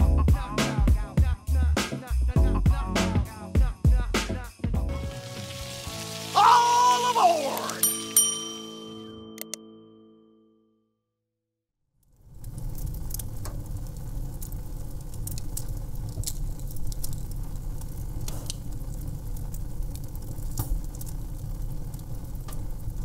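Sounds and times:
wood fire crackling and popping: 0:12.0 - 0:23.0.

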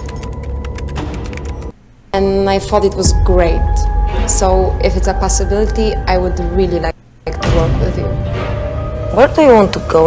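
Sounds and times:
rapid irregular clicks: 0:00.0 - 0:01.7.

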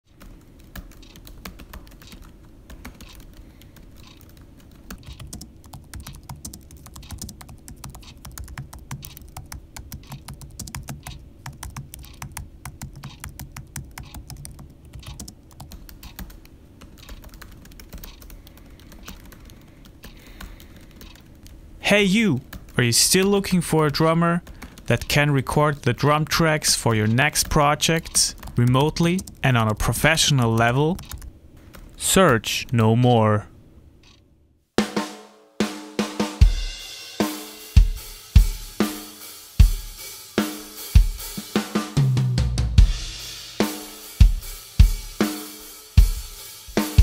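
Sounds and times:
laptop keyboard typing: 0:00.1 - 0:21.6, 0:22.4 - 0:32.0
low steady hum: 0:00.1 - 0:34.6.

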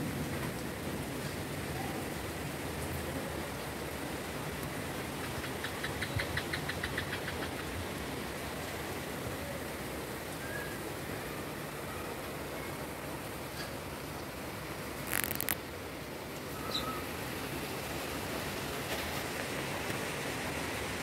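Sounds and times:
steady rain falling: 0:00.0 - 0:21.0
rapid short high ticks: 0:15.0 - 0:15.6.

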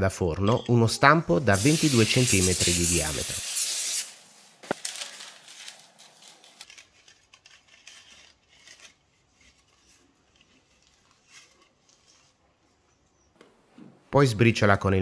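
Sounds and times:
parchment paper rustling: 0:01.6 - 0:13.1.

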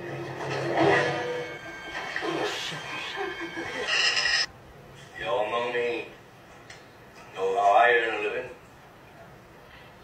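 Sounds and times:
film soundtrack from television: 0:00.0 - 0:10.0.

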